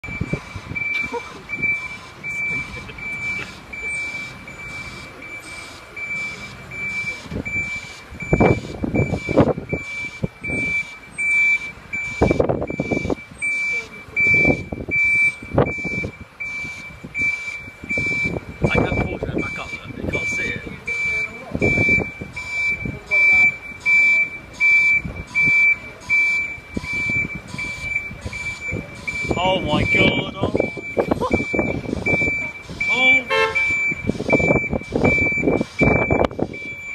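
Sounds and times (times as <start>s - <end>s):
reversing alarm beeping: 0.0s - 36.9s.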